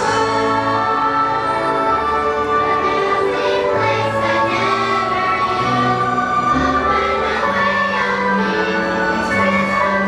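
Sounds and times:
children's choir singing: 0.0 - 10.0
musical accompaniment: 0.0 - 10.0.

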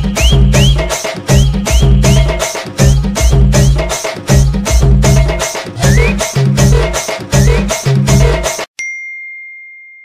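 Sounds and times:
music with percussive beat: 0.0 - 8.7
bright ding: 8.8 - 10.0.

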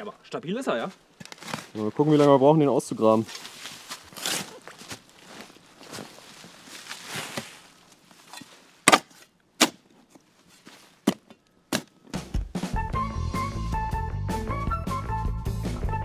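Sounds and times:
digging tool scraping earth: 3.3 - 5.1
sharp chopping strikes: 8.8 - 9.8, 11.0 - 12.5.

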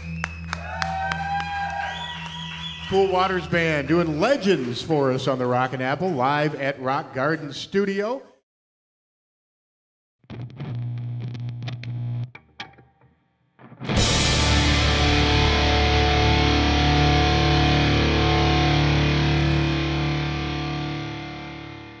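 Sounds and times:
distorted electric guitar: 10.3 - 13.0, 13.6 - 22.0.

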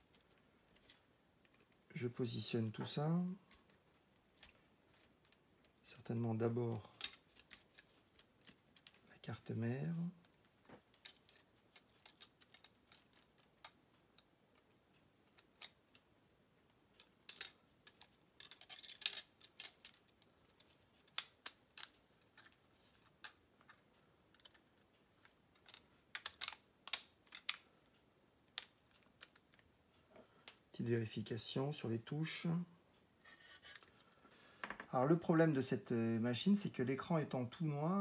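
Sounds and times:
small plastic clicks and scrapes: 6.9 - 9.0, 10.6 - 16.1, 16.9 - 29.7.

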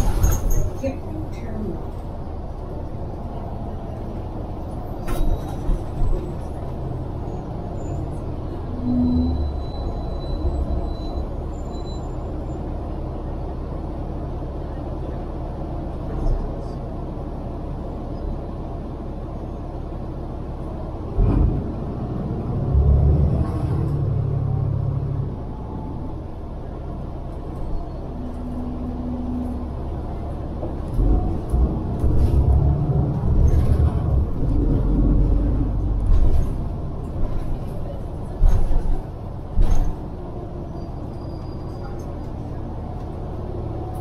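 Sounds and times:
bus engine and tyres rumbling: 0.0 - 44.0.

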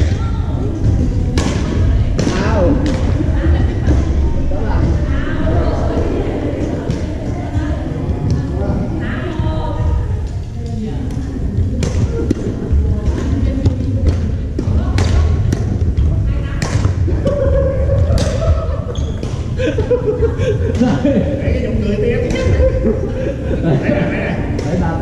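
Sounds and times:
background voices: 0.6 - 25.0.

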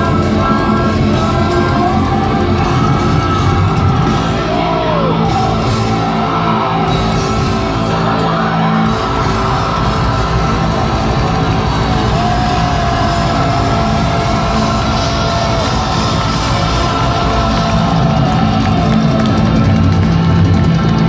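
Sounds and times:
live metal band playing: 0.0 - 21.0.

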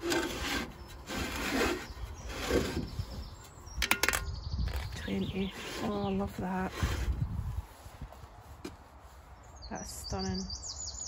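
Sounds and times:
small bird chirping trill: 1.8 - 6.6.

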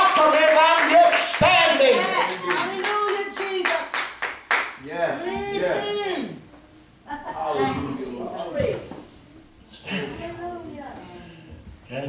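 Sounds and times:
hand clapping: 0.0 - 4.8.

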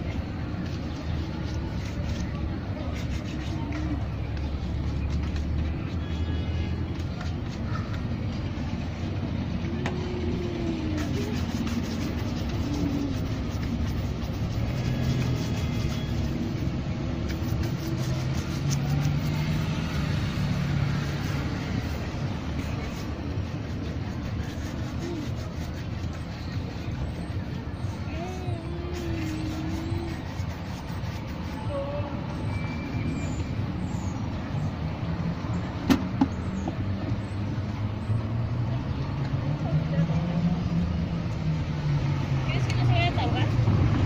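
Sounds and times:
shoe brush brushing leather: 0.0 - 7.9, 9.6 - 33.8
street traffic rumble: 0.0 - 44.0.

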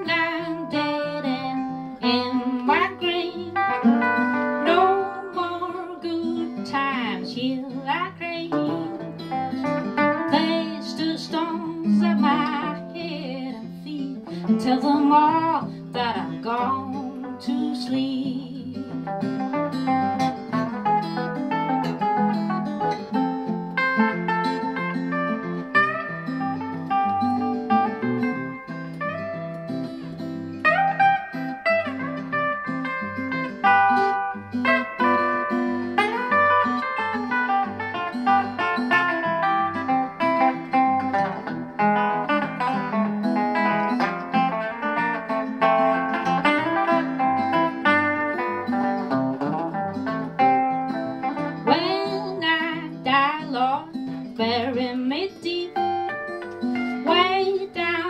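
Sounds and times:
acoustic guitar fingerpicked: 0.0 - 58.0
electric guitar with sliding notes: 0.0 - 58.0.

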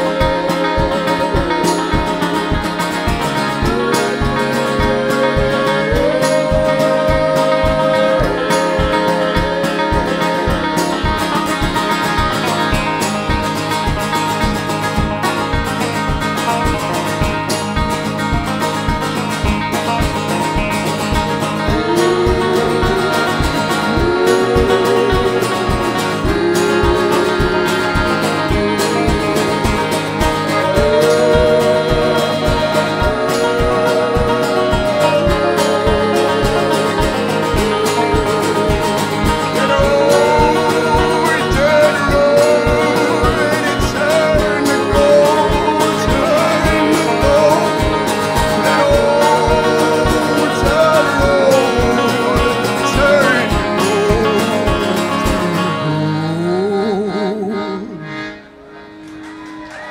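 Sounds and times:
man singing: 0.0 - 18.0, 18.8 - 58.4
folk band playing: 0.0 - 59.9.

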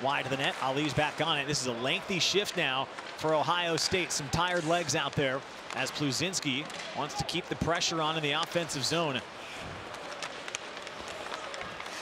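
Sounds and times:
skates scraping ice: 0.2 - 12.0
hockey sticks and puck clicking: 2.8 - 9.0, 9.8 - 12.0
crowd murmur: 9.2 - 12.0.

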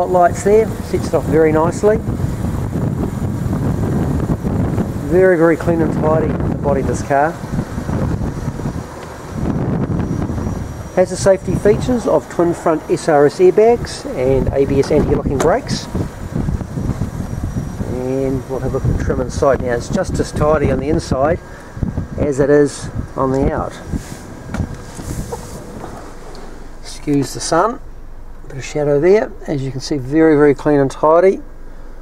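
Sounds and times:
wind rumbling on microphone: 0.0 - 29.5.

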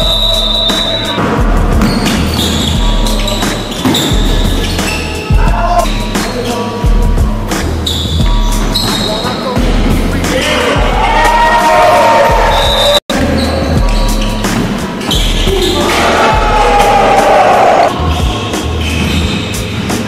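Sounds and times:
music with heavy bass line: 0.0 - 20.0.

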